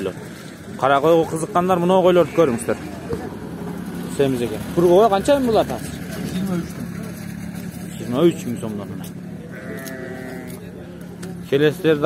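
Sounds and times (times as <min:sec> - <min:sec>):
sheep bleating: 0:09.4 - 0:10.7.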